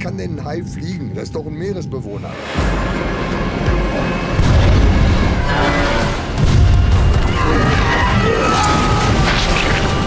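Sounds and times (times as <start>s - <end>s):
music: 0.0s - 10.0s
deep rumbling boom: 4.4s - 5.5s.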